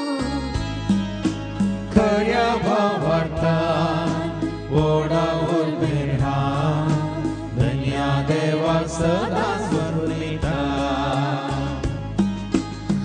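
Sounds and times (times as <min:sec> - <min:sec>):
instrumental backing with bass: 0:00.0 - 0:13.0.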